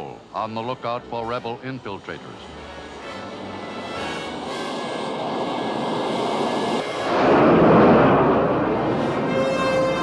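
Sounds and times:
jet engine roaring: 2.4 - 10.0.

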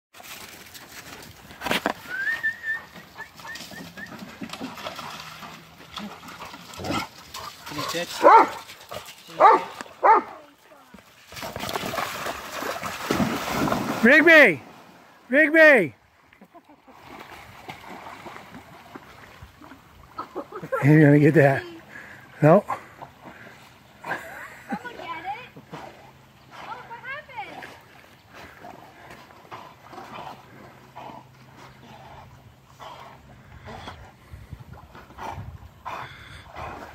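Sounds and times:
splashing through shallow water: 0.1 - 15.3, 16.2 - 20.7
dog barking: 8.2 - 8.6, 9.4 - 10.4
dogs puffing breath: 28.3 - 36.9.

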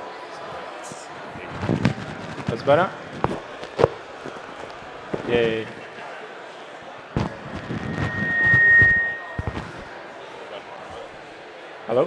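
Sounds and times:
microphone handling thumps: 7.2 - 8.2
feedback whine: 7.2 - 9.8.

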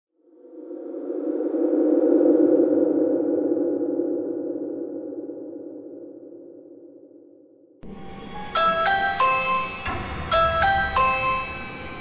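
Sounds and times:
low electronic drone: 7.8 - 12.0.

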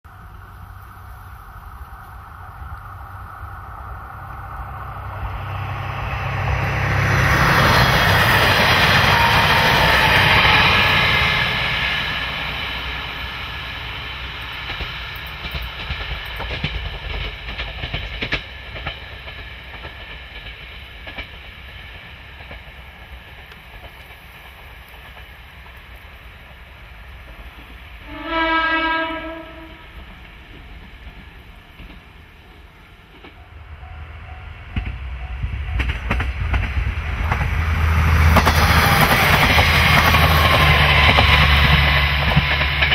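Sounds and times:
diesel railcar passing: 0.0 - 42.9
wheels clacking over rail joints: 5.2 - 27.9, 29.5 - 42.9.

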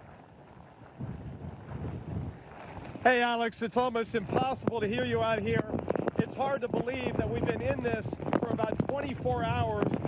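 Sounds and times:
wind buffeting a microphone: 0.0 - 10.0.

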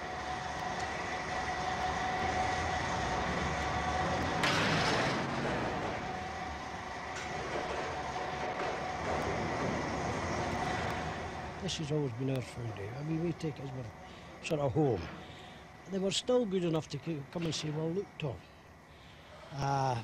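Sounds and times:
machine rumble with whine: 0.0 - 20.0.

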